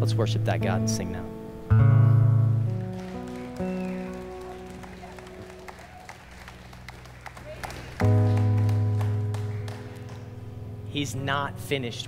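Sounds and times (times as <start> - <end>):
faint clapping: 2.6 - 10.5.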